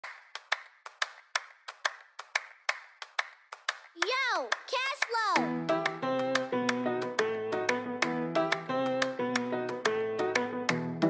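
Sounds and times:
sharp rhythmic claps: 0.0 - 6.8.

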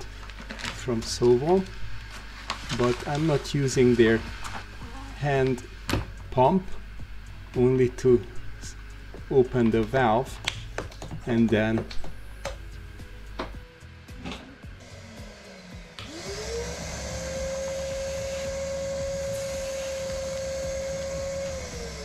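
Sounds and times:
vacuum cleaner motor running: 14.6 - 22.0.

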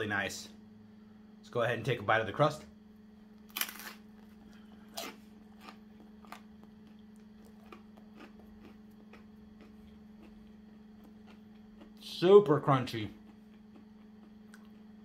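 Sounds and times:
steady low hum: 0.0 - 15.0
crunchy crust being chewed: 3.4 - 15.0.

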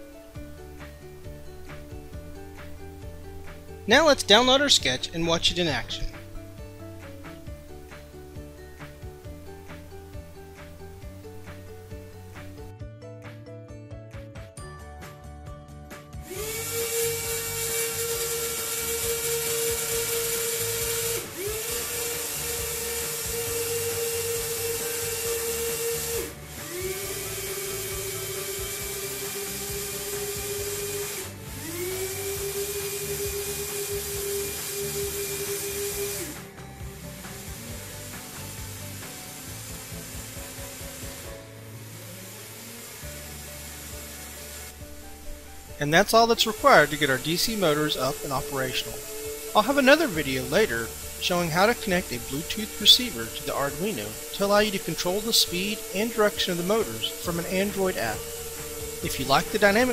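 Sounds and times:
motors with gear whine: 16.2 - 59.9.

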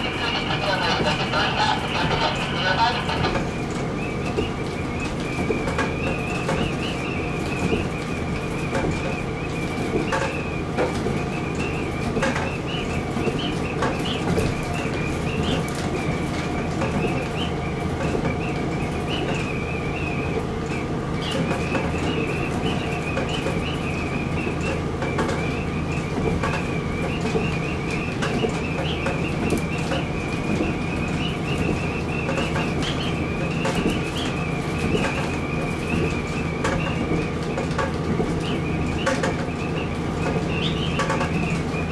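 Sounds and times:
railcar engine drone: 0.0 - 5.3.

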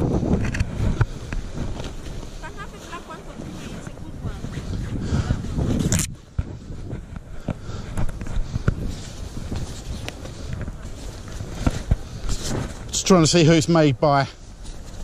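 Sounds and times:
cloth scraping microphone: 0.0 - 13.2
wind buffeting microphone: 0.0 - 15.0
fabric rustling: 8.8 - 13.2.

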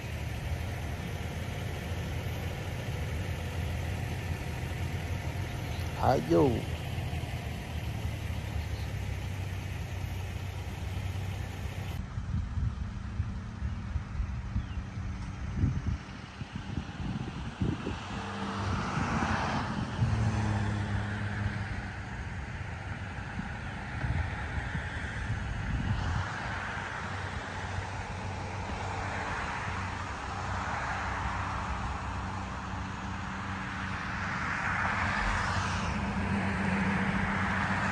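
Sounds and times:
vehicle passing: 0.0 - 12.0, 17.6 - 22.0, 33.3 - 37.9
road traffic rumble: 0.0 - 37.9.

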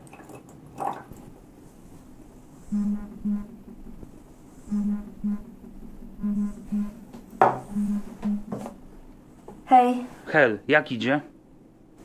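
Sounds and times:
phone vibrating on a table: 2.7 - 4.1, 4.7 - 8.8.

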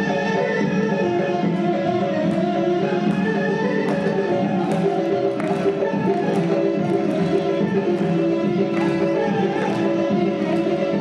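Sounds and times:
contrabass balalaika: 0.0 - 11.0
guitar: 0.0 - 11.0
small plucked folk instrument: 0.0 - 11.0.

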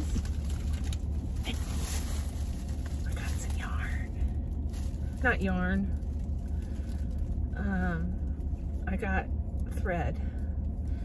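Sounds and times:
car cabin hum: 0.0 - 11.0.

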